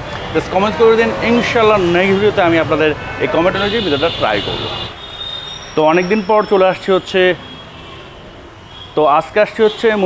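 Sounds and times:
man speaking: 0.3 - 4.9.

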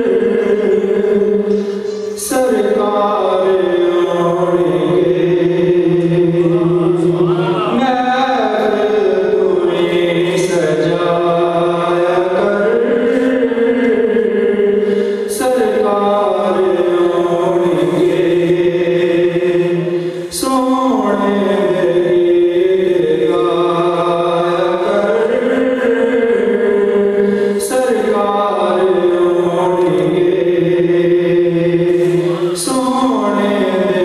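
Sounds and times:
man chanting into a microphone: 0.0 - 34.0.

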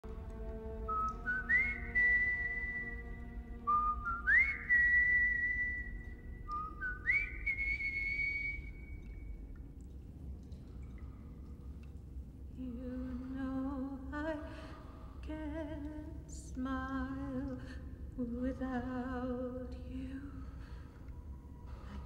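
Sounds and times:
bowed musical saw melody: 0.0 - 6.3.

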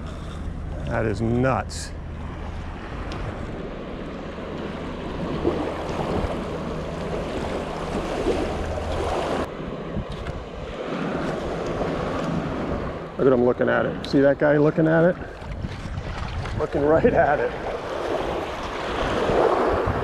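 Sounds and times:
surf washing at shoreline: 0.8 - 20.0
wind on microphone: 4.8 - 13.1, 15.2 - 20.0.

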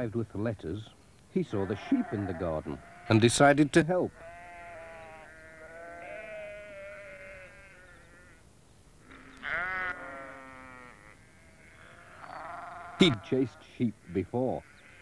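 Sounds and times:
sheep bleating: 1.5 - 3.5, 4.2 - 8.4, 9.0 - 15.0.

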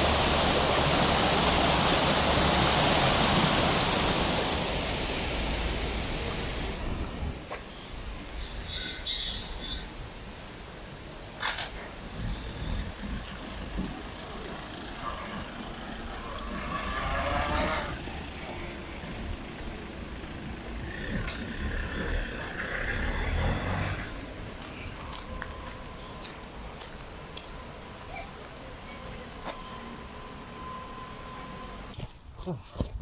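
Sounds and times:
vehicles passing: 0.0 - 32.0
traffic rumble: 0.0 - 33.0.

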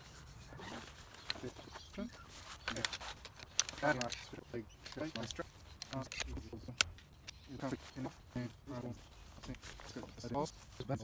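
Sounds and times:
fabric rustling: 0.0 - 6.6, 7.4 - 11.0
metal chair poles clinking: 2.3 - 8.1.

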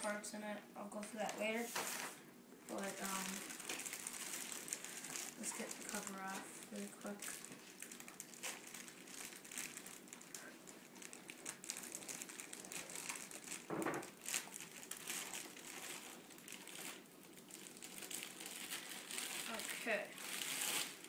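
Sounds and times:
plastic bag crinkling: 1.2 - 21.0.

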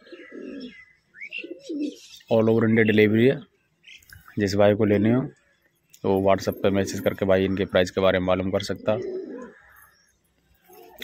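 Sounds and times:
pigeons cooing: 0.0 - 3.0, 4.8 - 5.6, 6.2 - 10.0, 10.6 - 11.0.

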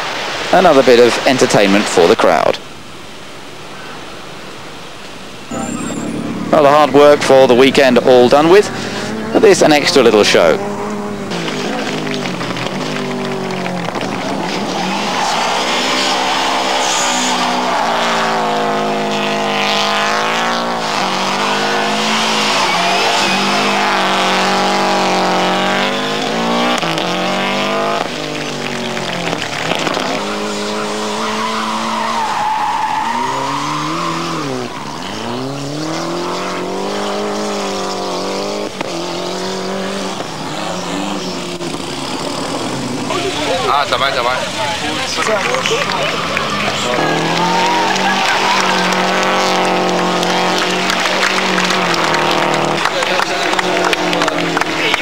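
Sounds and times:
rally car engine revving: 5.3 - 55.0
tyres squealing: 5.5 - 55.0.

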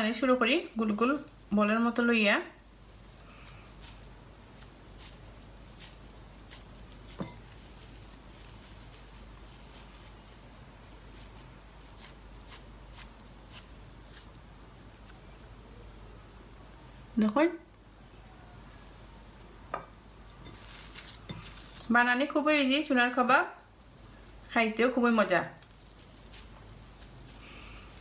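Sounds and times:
hands kneading mixture in bowl: 0.0 - 17.4, 20.3 - 28.0.

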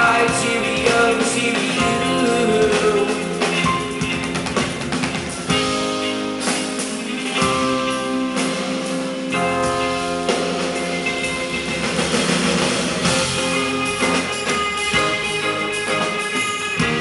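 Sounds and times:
drums: 0.0 - 17.0
electric guitar: 0.0 - 17.0
keyboards: 0.0 - 17.0.

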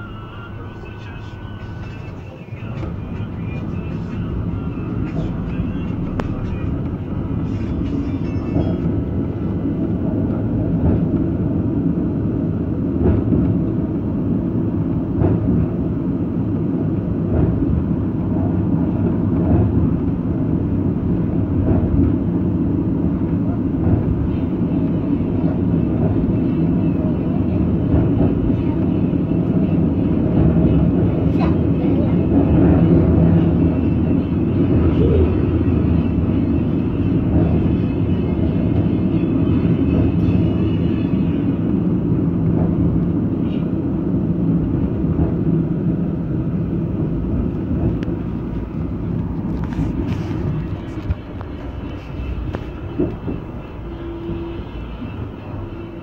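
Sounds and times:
train motor hum: 0.0 - 56.0
train wheels rumbling on rail: 0.0 - 56.0.

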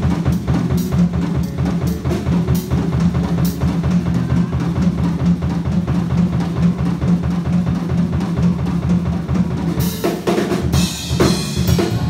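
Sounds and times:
drum kit: 0.0 - 12.0
electric bass: 0.0 - 12.0
funk band playing: 0.0 - 12.0.

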